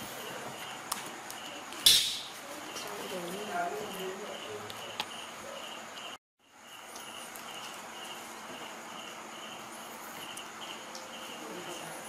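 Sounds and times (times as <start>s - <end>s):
insect chirping in pulses: 0.2s - 12.0s.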